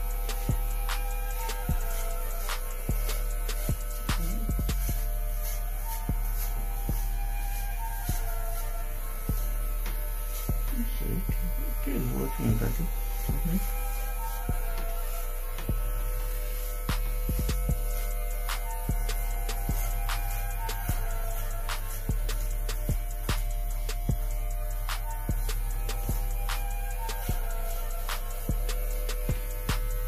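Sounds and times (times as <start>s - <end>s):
background music with beat: 0.0s - 30.0s
electric hair clippers buzzing: 0.0s - 30.0s.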